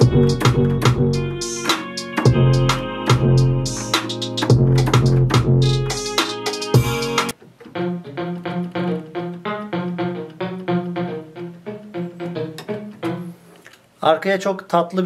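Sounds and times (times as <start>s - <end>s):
trap beat with deep bass: 0.0s - 7.3s
electric guitar plucked notes: 0.0s - 13.5s.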